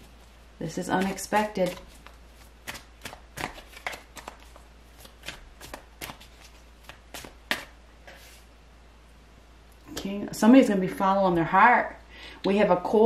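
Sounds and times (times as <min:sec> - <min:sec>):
cards being shuffled: 0:00.0 - 0:08.4.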